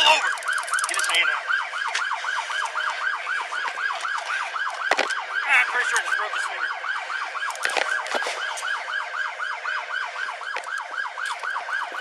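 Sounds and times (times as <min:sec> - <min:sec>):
police siren fast yelp: 0:00.0 - 0:12.0.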